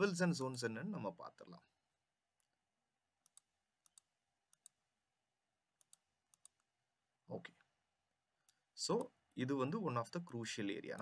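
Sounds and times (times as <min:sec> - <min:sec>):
computer mouse clicks: 0:03.2 - 0:04.8, 0:05.8 - 0:06.7.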